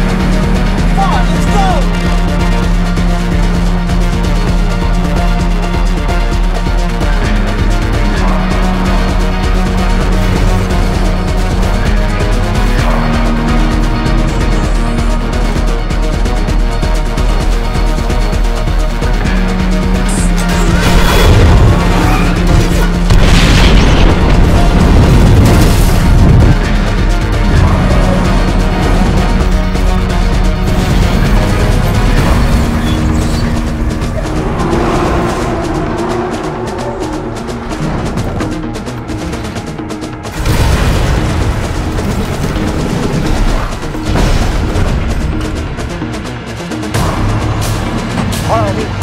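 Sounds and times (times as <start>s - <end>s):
orchestral music with heavy booms: 0.0s - 49.0s
pulsing action film score: 0.0s - 49.0s
heavy booms and crashes: 20.6s - 39.3s, 40.3s - 46.1s.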